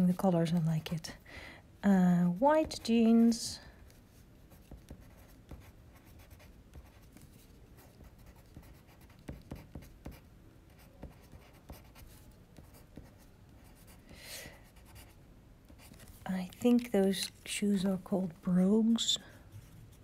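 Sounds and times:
pencil scratching on paper: 2.4 - 14.0, 14.6 - 16.2
soft paper rustle: 15.8 - 17.6.

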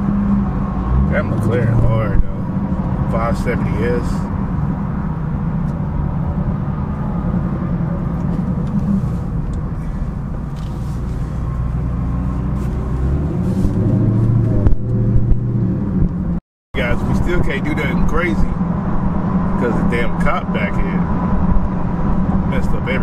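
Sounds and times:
car engine from inside cabin: 0.0 - 23.0.

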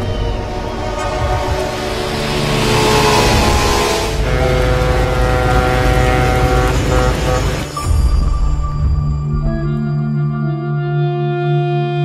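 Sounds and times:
speedboat engine speeding past: 0.0 - 7.8
film music with held chords: 0.0 - 12.0.

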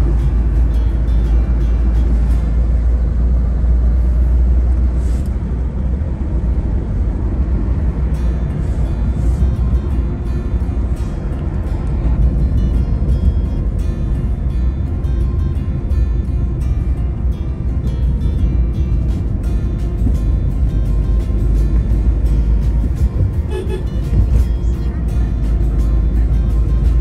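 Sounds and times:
music playing: 0.0 - 3.7, 7.6 - 27.0
car road and engine rumble: 0.0 - 27.0.

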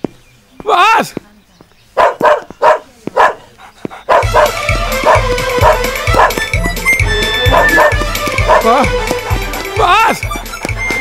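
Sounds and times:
dog barking: 2.0 - 6.6, 7.4 - 10.4
film music with steady beat: 4.2 - 11.0.

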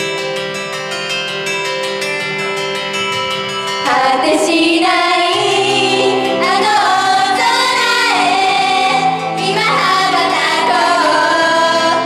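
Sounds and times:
recorded backing track: 0.0 - 12.0
girl group singing pop live: 3.8 - 12.0.

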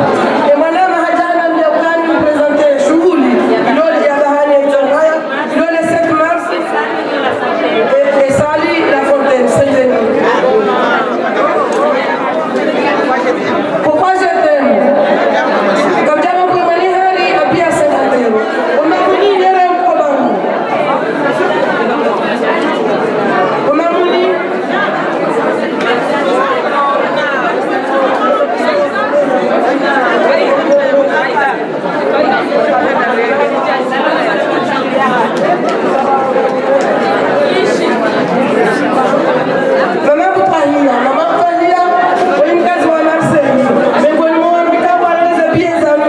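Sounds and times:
crowd chatter in echoing hall: 0.0 - 46.0.

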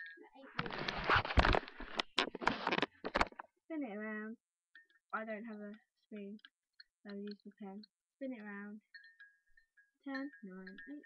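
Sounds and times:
sharp clicks and knocks: 0.6 - 3.5.

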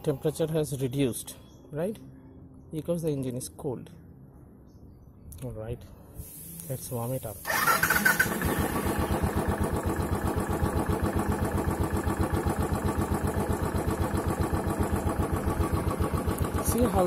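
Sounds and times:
motorcycle engine idling: 7.4 - 17.0.

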